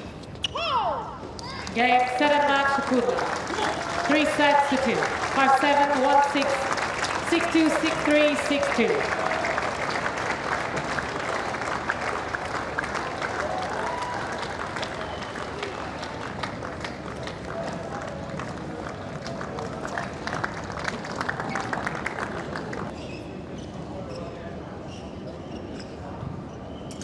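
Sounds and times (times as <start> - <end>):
spectators' voices: 1.4 - 13.0
crowd clapping: 1.7 - 22.9.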